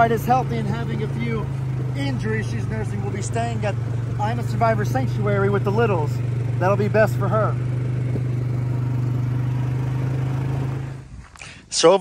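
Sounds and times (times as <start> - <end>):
atv engine running: 0.0 - 11.3.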